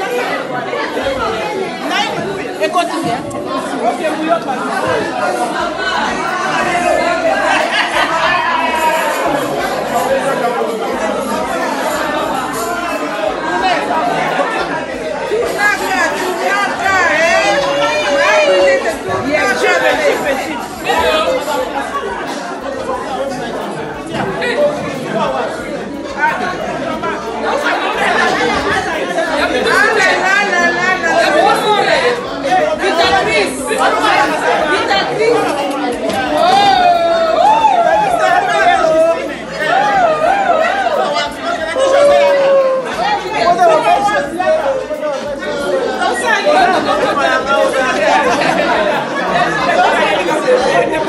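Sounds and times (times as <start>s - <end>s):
women chattering: 0.0s - 51.0s.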